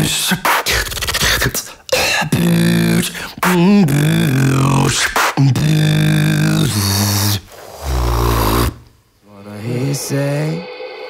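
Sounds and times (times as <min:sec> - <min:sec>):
lips buzzing held low notes: 0:05.6 - 0:08.9.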